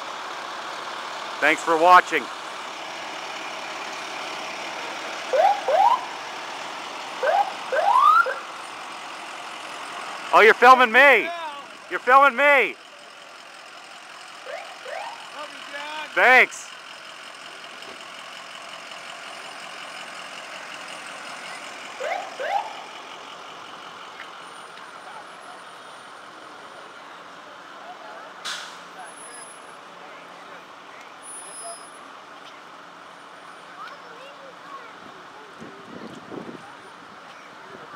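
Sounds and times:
engine and road hum: 0:00.0 - 0:37.9
rising siren whoops: 0:05.3 - 0:06.1, 0:07.2 - 0:08.5, 0:22.0 - 0:22.8.

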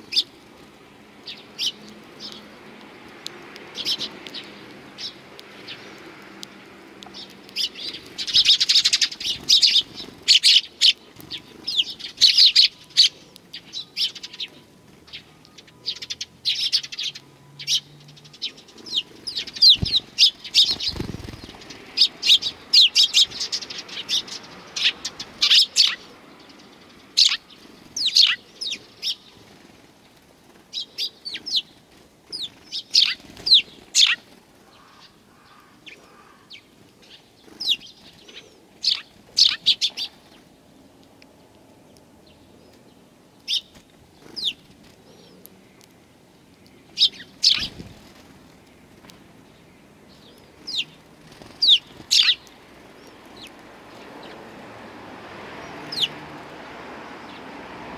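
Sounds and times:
sparrows chirping: 0:00.0 - 0:57.9
wing flaps: 0:19.4 - 0:21.7, 0:47.6 - 0:48.4.

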